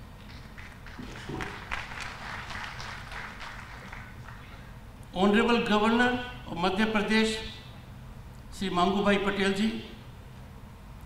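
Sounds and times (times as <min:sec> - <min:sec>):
audience clapping: 0:00.2 - 0:04.8.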